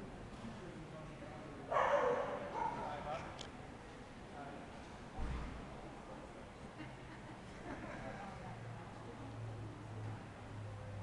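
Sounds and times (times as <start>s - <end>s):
murmur of people talking: 0.0s - 11.0s
dog barking loudly: 1.7s - 2.8s.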